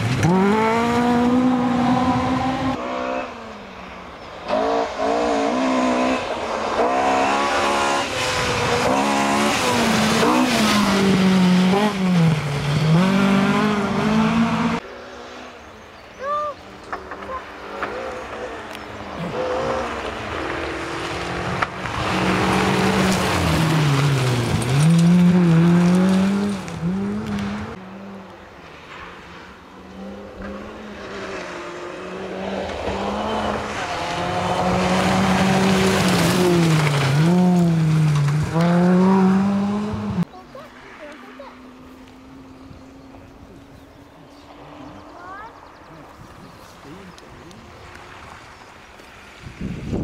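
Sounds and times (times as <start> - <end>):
rally car engines revving: 0.0 - 50.0
gravel hiss from tyres: 7.5 - 11.6, 33.5 - 38.6, 46.0 - 50.0.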